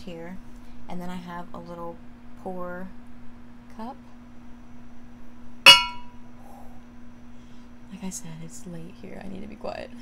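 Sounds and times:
ceramic cup clinking on dishware: 0:05.7 - 0:06.1.

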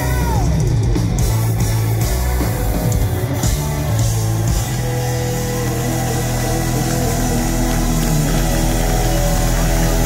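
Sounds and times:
hard rock band holding a chord: 0:00.0 - 0:10.0
steady low drone: 0:00.8 - 0:10.0.

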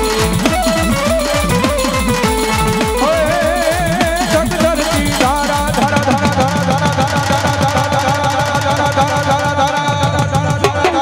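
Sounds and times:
fast hand drum strokes: 0:00.0 - 0:11.0.

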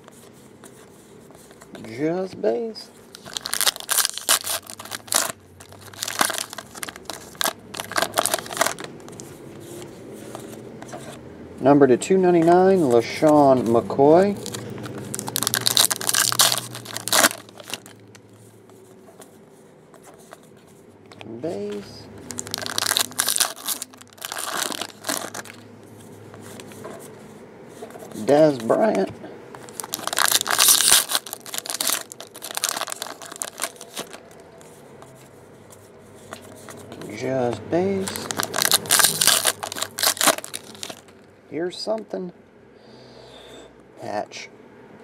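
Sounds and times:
foil wrapper crinkling: 0:03.1 - 0:09.2, 0:14.3 - 0:18.2, 0:21.7 - 0:25.6, 0:29.6 - 0:34.6, 0:37.9 - 0:41.2.

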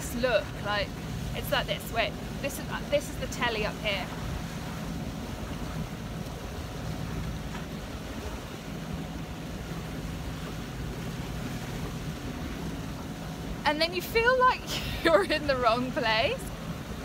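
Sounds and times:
low steady hum: 0:00.0 - 0:17.0
water noise: 0:00.0 - 0:17.0
wind: 0:00.0 - 0:17.0.

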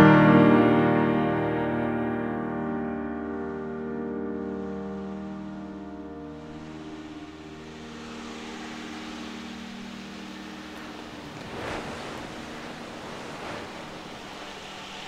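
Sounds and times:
surf-like noise wash: 0:00.0 - 0:15.0
sustained bell-like tones: 0:05.5 - 0:13.2.

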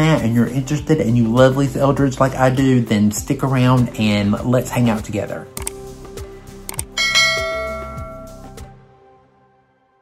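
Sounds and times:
mouse clicks: 0:05.6 - 0:05.8, 0:06.7 - 0:07.0
notification bell chime: 0:07.0 - 0:08.5.

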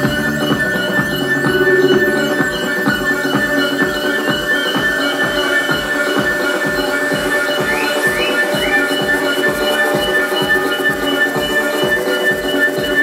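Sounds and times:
held high synth tones: 0:00.0 - 0:13.0
rising synth chirps: 0:00.0 - 0:13.0
steady kick drum: 0:00.0 - 0:13.0.

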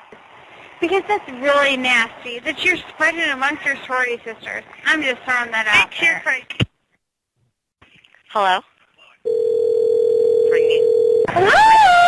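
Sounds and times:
phone ringing tone: 0:09.3 - 0:11.3.

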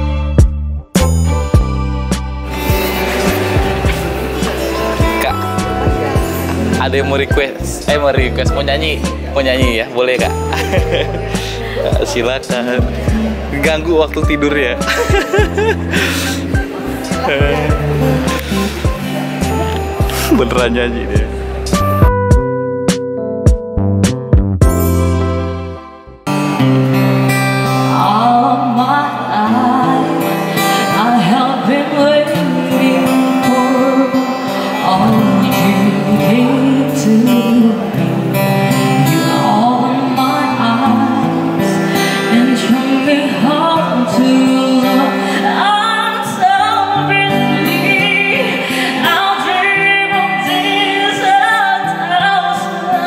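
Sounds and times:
acoustic guitar: 0:00.0 - 0:53.0
woman singing into a microphone: 0:27.7 - 0:53.0.

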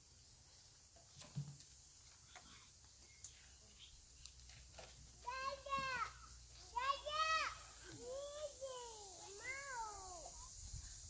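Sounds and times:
high-pitched wordless cries: 0:05.2 - 0:10.6.

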